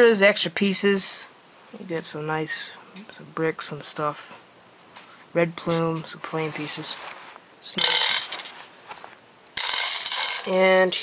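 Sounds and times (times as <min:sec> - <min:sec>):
plastic pieces rattling and clicking: 0:07.8 - 0:08.6, 0:09.6 - 0:10.8.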